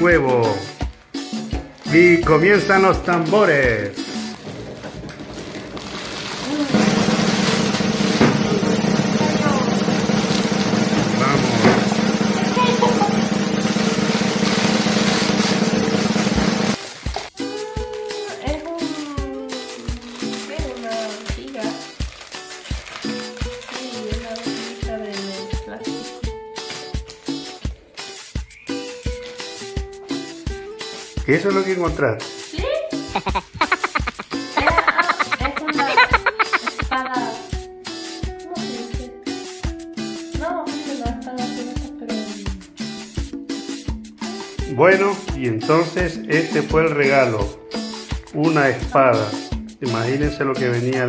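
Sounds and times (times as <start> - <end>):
background music with steady beat: 0.0 - 4.5, 16.7 - 51.0
drum roll: 6.6 - 16.8, 33.1 - 37.2.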